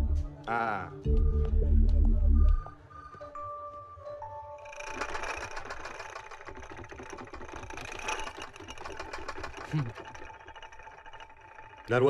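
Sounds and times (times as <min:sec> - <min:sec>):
furniture rattling: 0:04.6 - 0:12.0.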